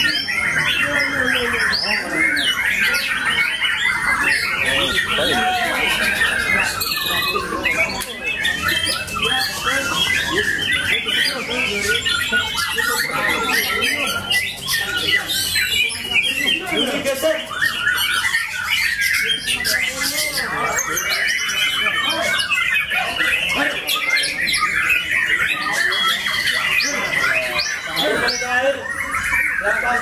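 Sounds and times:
birds singing chirps and trills: 0.0s - 30.0s.

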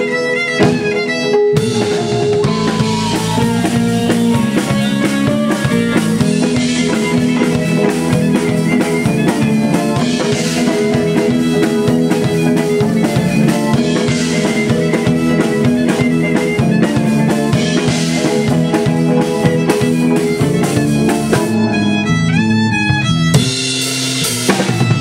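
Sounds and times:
live band playing: 0.0s - 25.0s
pitch-bending melody line: 1.6s - 16.4s.

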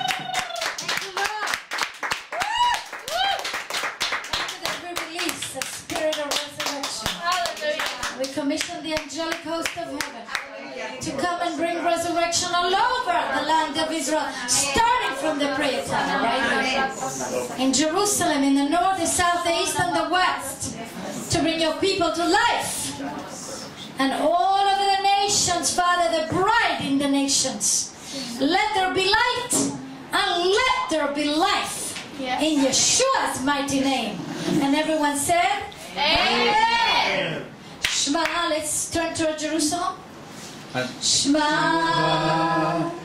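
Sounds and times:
hands clapping: 0.0s - 10.5s, 37.8s - 38.4s
raised voices: 41.3s - 43.0s.

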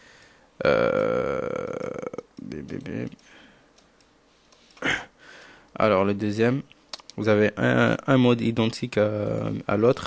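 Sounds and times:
computer mouse clicks: 2.3s - 4.8s, 6.7s - 7.2s.

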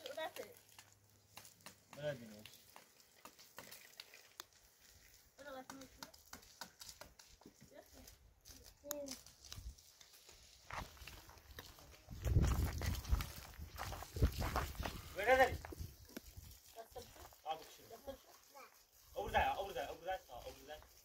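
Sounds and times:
footsteps on stony path: 4.5s - 17.4s.

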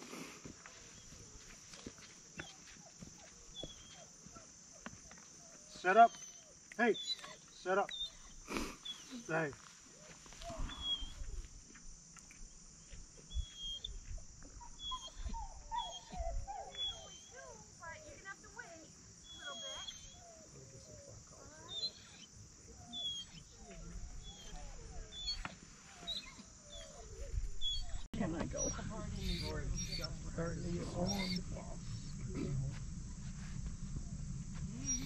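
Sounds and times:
dog whining: 3.6s - 4.5s, 5.4s - 9.2s, 14.6s - 17.4s, 19.3s - 20.5s, 21.6s - 32.7s, 34.7s - 35.0s.

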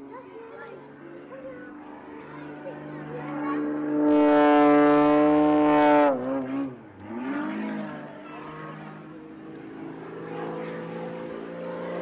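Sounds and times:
propeller plane engine drone: 0.0s - 12.0s.

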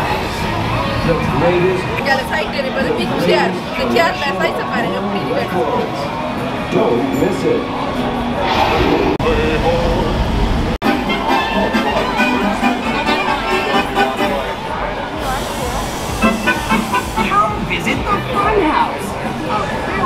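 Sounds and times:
crowd chatter: 0.0s - 20.0s
low traffic rumble: 0.0s - 20.0s
music playing: 10.8s - 20.0s.

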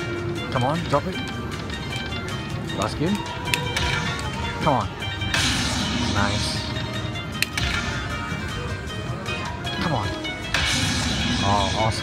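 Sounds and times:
slot machine bonus music: 0.0s - 12.0s.

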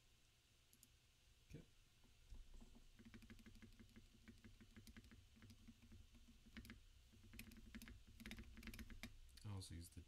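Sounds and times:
fast mechanical keyboard typing: 2.9s - 9.2s.

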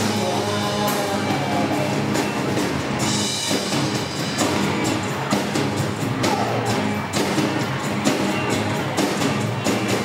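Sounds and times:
drum kit: 0.0s - 10.0s
electric bass: 0.0s - 10.0s.

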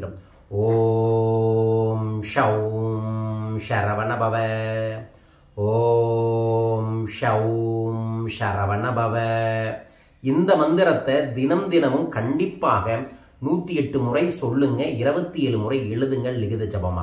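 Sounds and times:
man chanting on one pitch: 0.0s - 17.0s.

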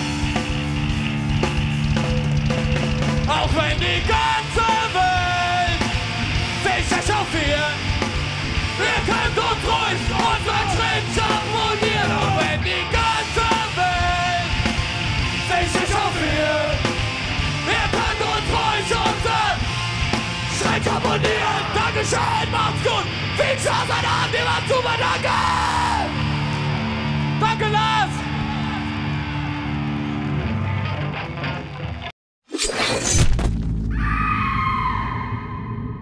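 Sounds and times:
loud drums: 0.0s - 28.9s
punk band playing live: 0.0s - 32.1s
vocalists yelling: 8.6s - 14.6s, 15.4s - 16.8s, 17.4s - 26.4s.

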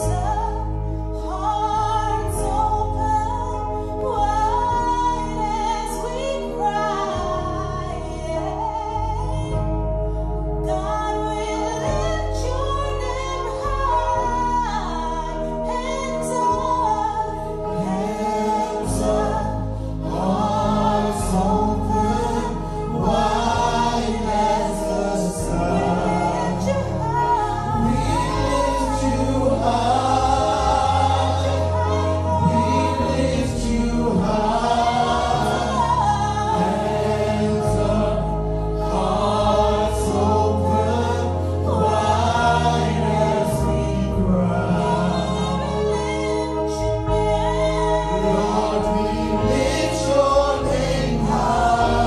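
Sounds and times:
group singing gospel in harmony: 0.0s - 9.8s, 10.6s - 52.0s
sustained low bass notes: 0.0s - 52.0s.

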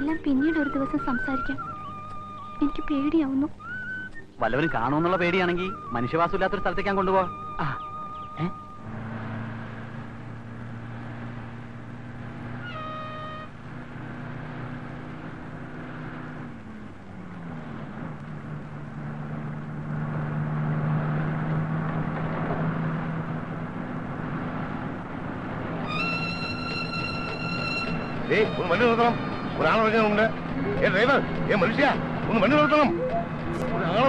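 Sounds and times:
bus engine running: 0.0s - 34.0s
short high tone: 32.6s - 34.0s.

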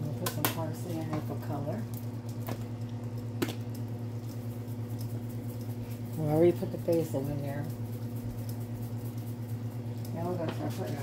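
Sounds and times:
steady low hum: 0.0s - 11.0s
seasoning shaker ticks: 0.2s - 11.0s.

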